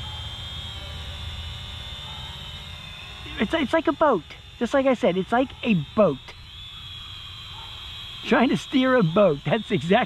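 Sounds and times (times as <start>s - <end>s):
drone propellers whining: 0.0s - 10.0s.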